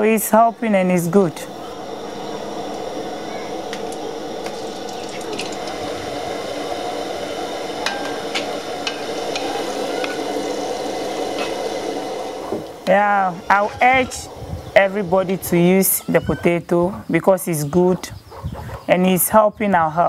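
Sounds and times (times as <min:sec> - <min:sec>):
dough sizzling in hot oil: 0:02.6 - 0:13.3.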